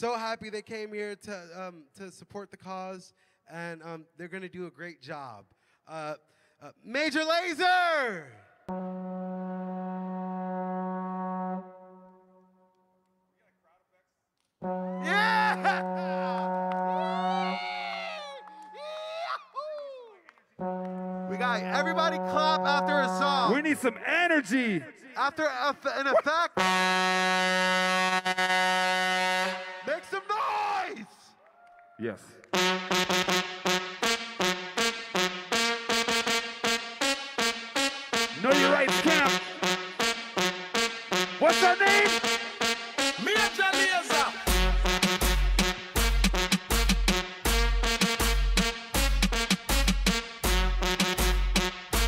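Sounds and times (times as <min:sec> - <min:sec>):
man shouting: 0:07.1 - 0:08.5, 0:14.9 - 0:20.3, 0:21.3 - 0:26.6, 0:29.9 - 0:32.3, 0:38.3 - 0:39.7, 0:41.4 - 0:44.5
dance music with brassy horn stabs: 0:08.7 - 0:12.0, 0:14.6 - 0:17.8, 0:20.6 - 0:25.3, 0:26.5 - 0:30.2, 0:32.5 - 0:52.0
low brass-like horn note: 0:08.7 - 0:12.4, 0:14.6 - 0:17.6, 0:20.6 - 0:23.5.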